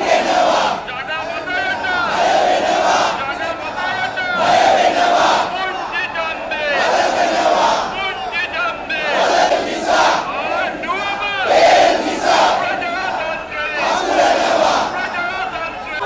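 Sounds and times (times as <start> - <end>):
crowd chanting slogans: 0.0 - 16.0.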